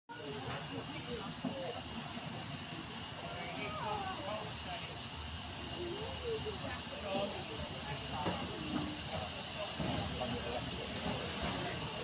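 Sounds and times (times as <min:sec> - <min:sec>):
faint voices talking: 0:00.1 - 0:12.0
steam locomotive hissing: 0:00.1 - 0:12.0.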